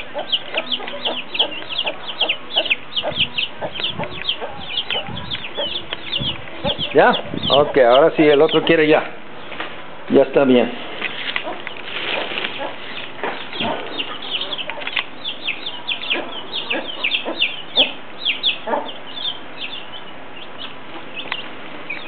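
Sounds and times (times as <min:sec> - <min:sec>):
hen clucking: 0:00.0 - 0:09.6, 0:11.3 - 0:22.0
chicks peeping: 0:00.0 - 0:22.0.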